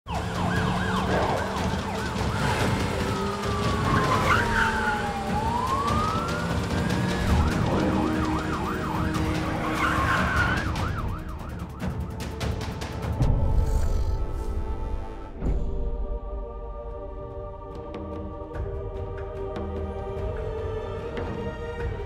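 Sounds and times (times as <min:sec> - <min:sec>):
siren yelps: 0:00.1 - 0:12.1
police sirens wailing: 0:00.1 - 0:13.0.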